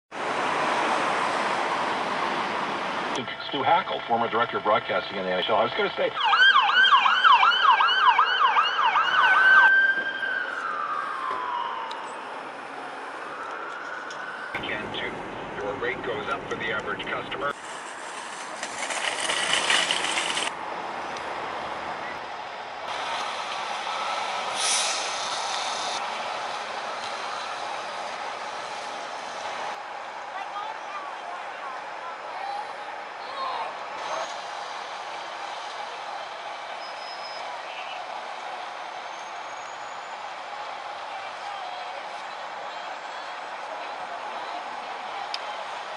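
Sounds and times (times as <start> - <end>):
traffic noise: 0.1 - 45.9
vehicle engine: 12.8 - 32.0, 32.8 - 45.9
air brakes hissing: 24.3 - 26.0.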